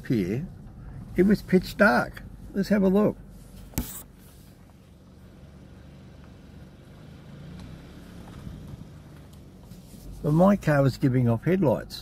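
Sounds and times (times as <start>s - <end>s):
car engine running: 0.0s - 12.0s.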